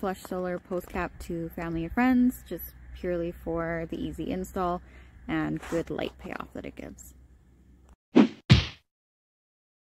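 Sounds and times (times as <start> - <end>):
deep thud: 8.2 - 8.8
whoosh and whack effects: 8.2 - 8.8.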